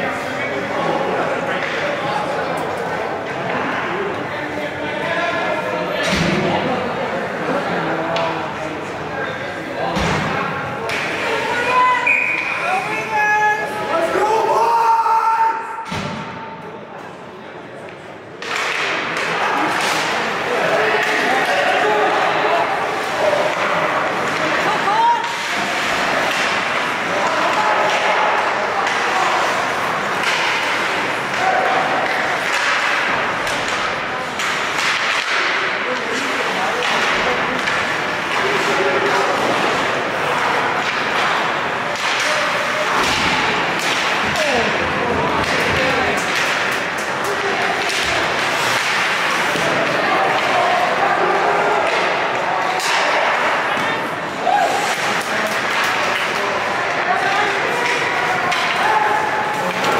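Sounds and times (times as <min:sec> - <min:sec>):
hockey sticks and puck clacking: 0:00.0 - 0:14.9, 0:17.8 - 0:59.9
voices of players and spectators: 0:00.0 - 0:59.9.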